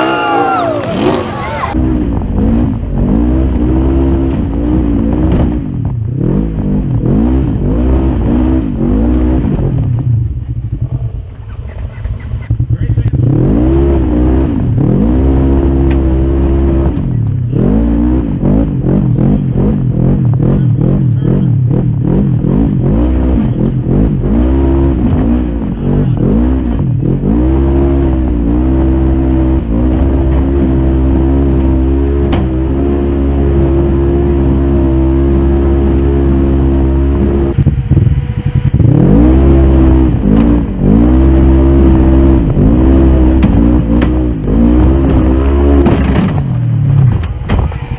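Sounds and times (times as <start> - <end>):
engine revving under load: 0.0 - 47.9.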